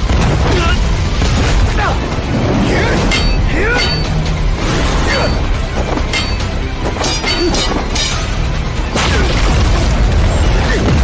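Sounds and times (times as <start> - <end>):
metallic sword clashes: 3.1 - 4.2, 6.1 - 8.3.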